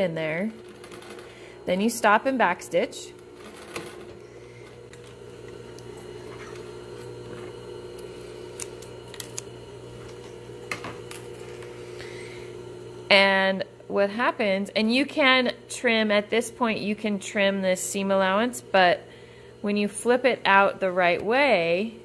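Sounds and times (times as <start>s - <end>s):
sewing machine motor hum: 0.0s - 14.6s.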